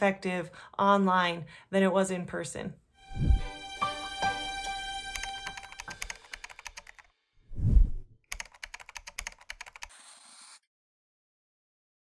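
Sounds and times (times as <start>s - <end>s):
low whoosh: 3.1s - 3.6s, 7.5s - 8.1s
keyboard typing clicks: 5.1s - 7.1s, 8.3s - 9.9s.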